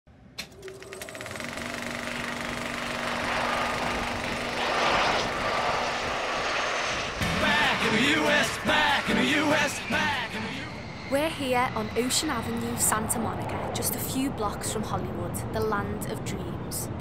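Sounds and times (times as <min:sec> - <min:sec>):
noisy swell: 0:02.1 - 0:15.6
voices: 0:07.3 - 0:17.0.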